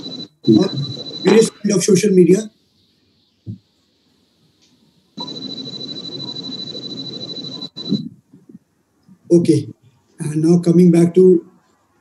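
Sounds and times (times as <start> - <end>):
noisy hum with high whine: 0.0 - 12.0.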